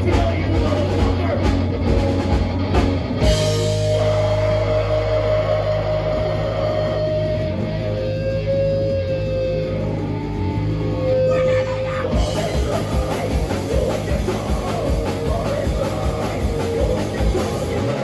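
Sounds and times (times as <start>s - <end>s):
bass guitar: 0.0s - 18.0s
distorted electric guitar: 0.0s - 18.0s
low drone: 2.4s - 18.0s.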